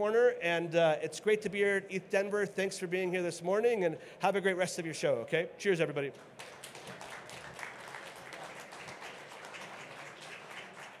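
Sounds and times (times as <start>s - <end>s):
audience applauding: 6.4s - 11.0s.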